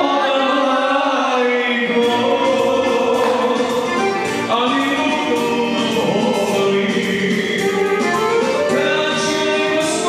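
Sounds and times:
person singing into a microphone: 0.0 - 10.0
live band music: 1.7 - 10.0.

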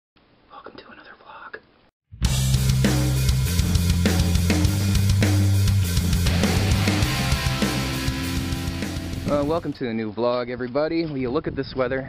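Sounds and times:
man whispering: 0.5 - 1.7.

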